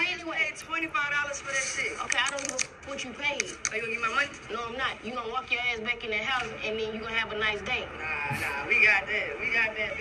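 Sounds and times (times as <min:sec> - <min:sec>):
indistinct voices talking: 0:02.7 - 0:09.1.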